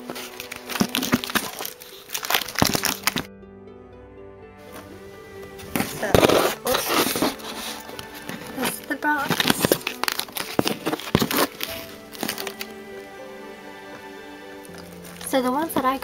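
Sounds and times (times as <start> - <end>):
cardboard box clicks and rustles: 0.0 - 3.3, 5.7 - 12.6
background music: 0.0 - 16.0.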